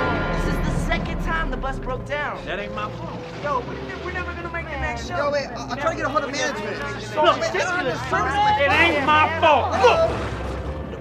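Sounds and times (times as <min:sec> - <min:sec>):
voices talking: 0:00.3 - 0:10.4.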